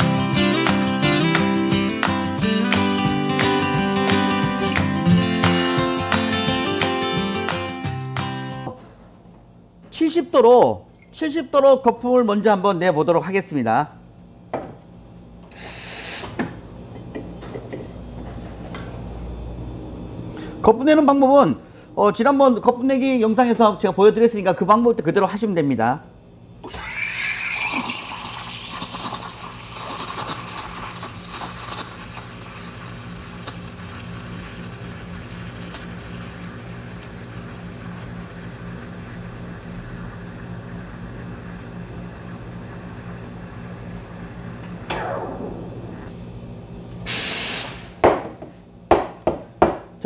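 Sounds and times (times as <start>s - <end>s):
steam wand hissing in milk: 15.5s - 16.4s, 26.6s - 38.8s, 47.1s - 48.0s.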